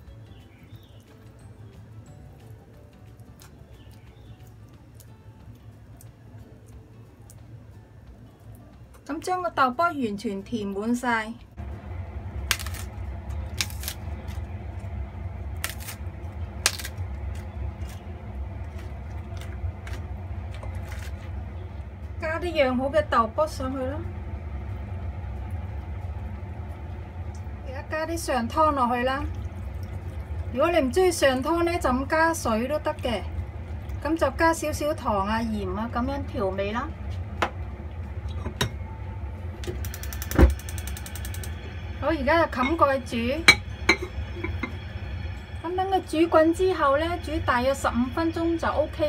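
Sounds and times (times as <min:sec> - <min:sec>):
steady low hum: 0:11.3 - 0:49.0
cabbage leaves being torn: 0:12.4 - 0:14.5, 0:15.6 - 0:21.4.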